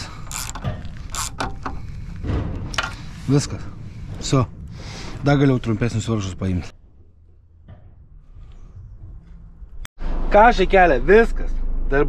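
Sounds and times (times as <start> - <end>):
wrench clicks: 0.0 - 1.7
tools and bolts clinking: 0.0 - 1.9.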